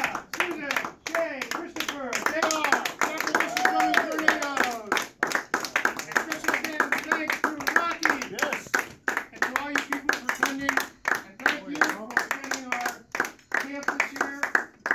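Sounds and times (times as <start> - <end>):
group clapping: 0.0 - 14.9.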